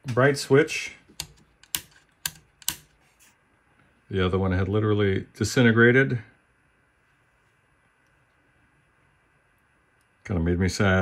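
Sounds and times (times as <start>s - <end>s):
toggle switch clicks: 1.1s - 2.9s.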